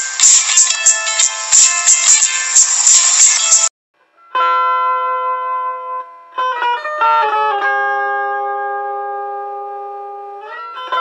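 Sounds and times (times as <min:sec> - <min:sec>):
electric guitar chord ringing: 0:04.2 - 0:11.0.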